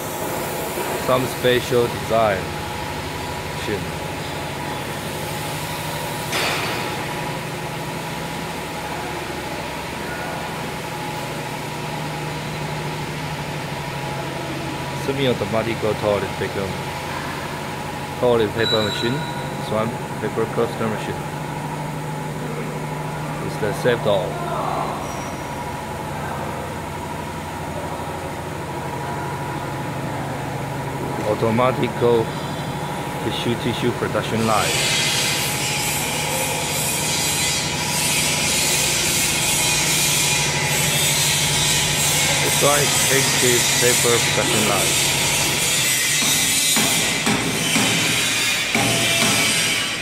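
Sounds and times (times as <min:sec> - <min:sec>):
machines humming: 0:00.0 - 0:50.0.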